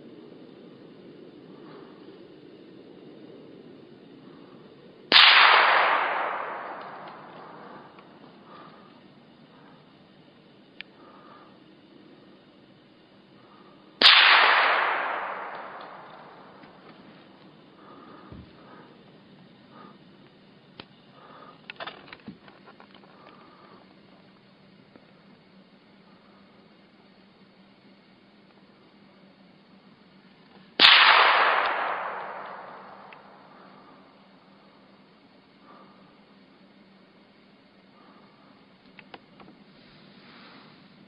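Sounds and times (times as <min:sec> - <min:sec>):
echoing gunshot: 0:05.1 - 0:07.9, 0:14.0 - 0:16.8, 0:30.8 - 0:33.8.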